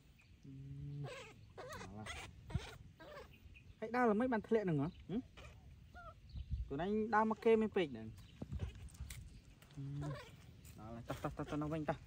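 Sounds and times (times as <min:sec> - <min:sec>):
baby monkey squeaks and whimpers: 0:00.8 - 0:03.7, 0:05.0 - 0:06.7, 0:09.8 - 0:10.5.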